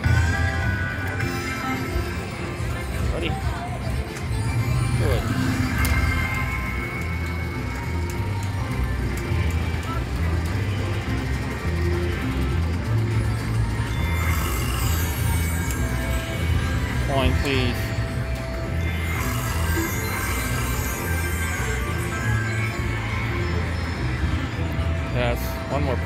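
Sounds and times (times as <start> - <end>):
slot machine bonus music: 0.0 - 26.0.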